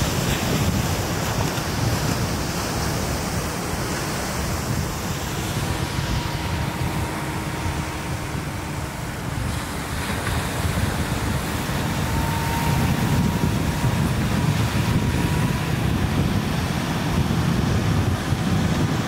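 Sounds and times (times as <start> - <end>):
ocean surf washing ashore: 0.0 - 19.0
wind rumbling on microphone: 0.0 - 19.0.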